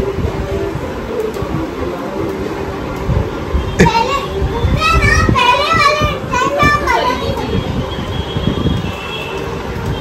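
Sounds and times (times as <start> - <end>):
young children playing: 3.8 - 8.0.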